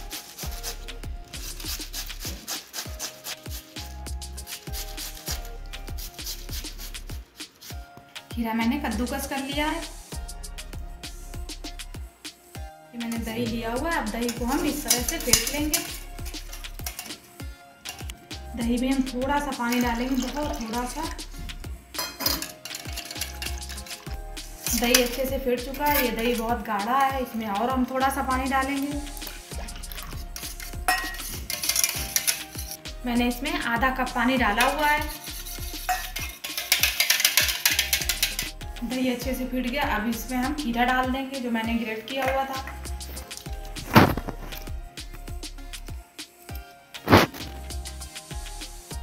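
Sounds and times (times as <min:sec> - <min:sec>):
whisk clicking and scraping metal bowl: 0:00.0 - 0:07.8, 0:13.0 - 0:39.0
background music with steady beat: 0:00.0 - 0:49.0
steel plate clattering against bowl: 0:14.2 - 0:17.3, 0:22.0 - 0:25.2, 0:29.9 - 0:32.7, 0:35.9 - 0:38.5.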